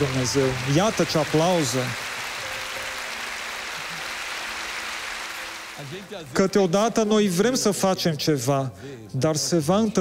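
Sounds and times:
crowd applauding: 0.0s - 7.0s.

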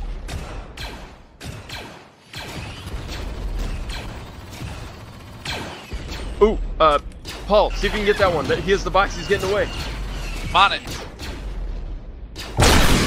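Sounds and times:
sci-fi blaster shots: 7.7s - 13.0s.

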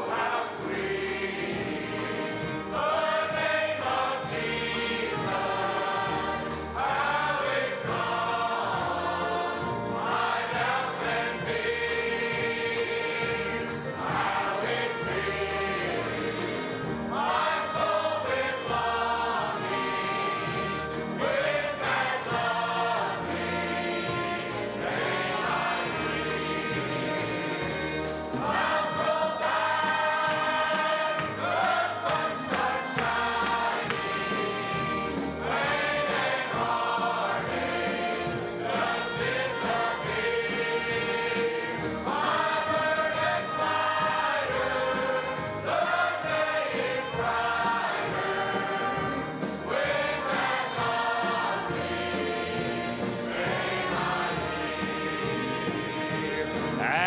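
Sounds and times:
choir singing a hymn: 0.0s - 57.0s.

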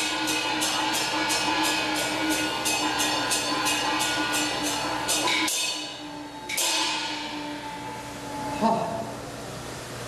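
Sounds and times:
sharp percussion beat: 0.0s - 8.7s.

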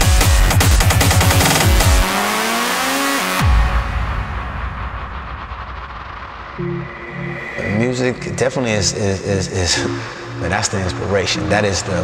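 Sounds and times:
rising synth sweeps: 6.5s - 12.0s
electronic dance music: 6.6s - 9.0s.

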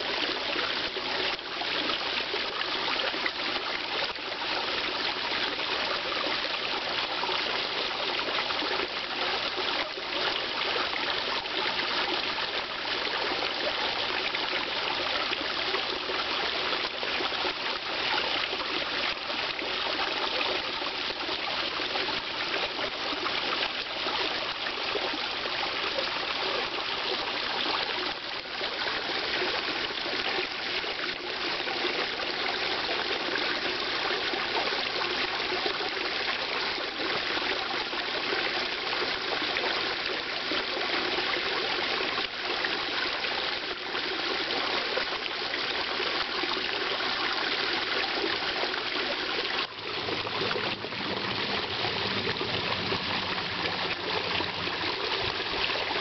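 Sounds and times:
water trickling into pond: 0.0s - 56.0s.

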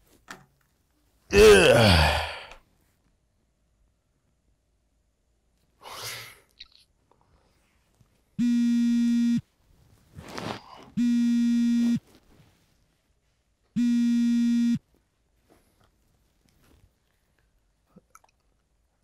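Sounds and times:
mobile phone buzzing: 8.4s - 9.4s, 11.0s - 12.0s, 13.8s - 14.8s.

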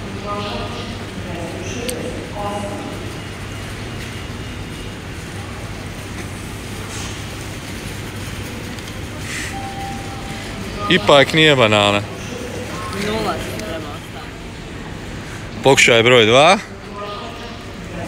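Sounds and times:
supermarket background hum: 0.0s - 18.0s.

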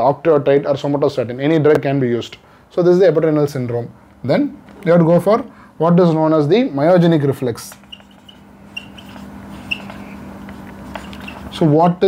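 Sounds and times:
faint steady hum: 0.0s - 12.0s
marker squeaking on whiteboard: 7.6s - 11.7s.

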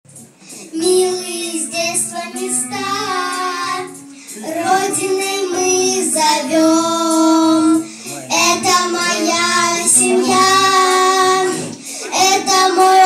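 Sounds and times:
musical accompaniment: 0.1s - 13.0s
child singing: 0.7s - 13.0s.

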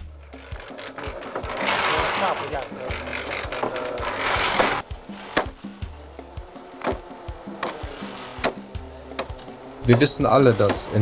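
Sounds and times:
concrete mixer running: 0.0s - 11.0s.

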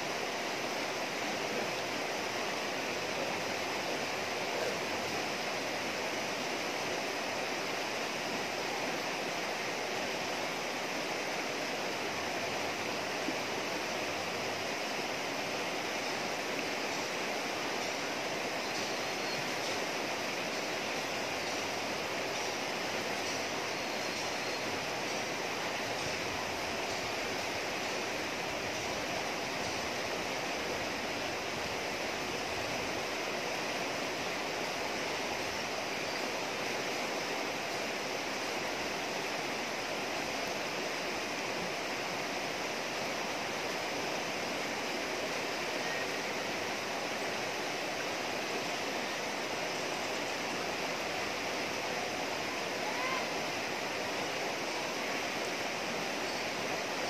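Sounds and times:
river water rushing over rocks: 0.0s - 57.0s.

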